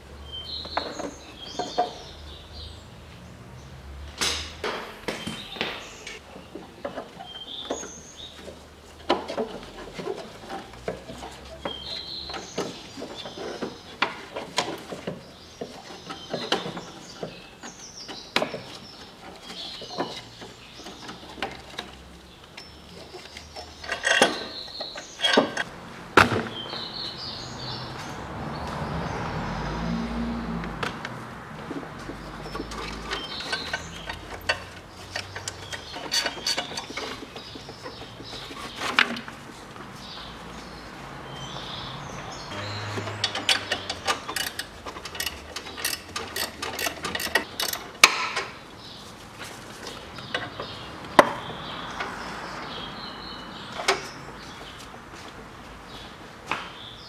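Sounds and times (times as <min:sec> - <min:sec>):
metal parts clicking and clanking: 0:18.5 - 0:25.7, 0:32.4 - 0:38.0, 0:42.9 - 0:48.6
ratchet clicks: 0:43.3 - 0:48.2.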